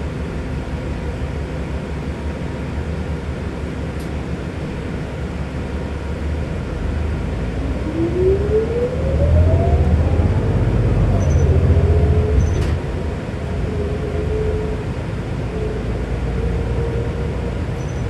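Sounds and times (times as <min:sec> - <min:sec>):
bus drivetrain rumble: 0:00.0 - 0:18.0
rising whine: 0:06.4 - 0:18.0.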